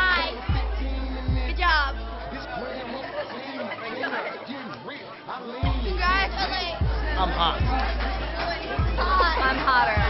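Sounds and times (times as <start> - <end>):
background music: 0.0 - 10.0
people chattering: 0.0 - 10.0.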